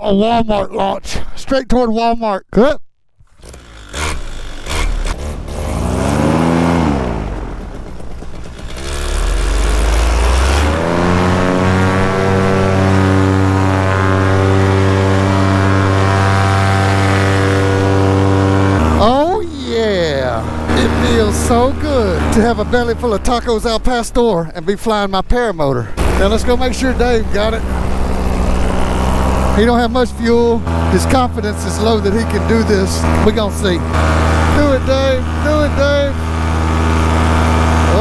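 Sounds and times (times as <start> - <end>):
person speaking: 0.0 - 2.1, 18.8 - 36.3, 37.8 - 38.0
paramotor engine and propeller: 3.2 - 38.0.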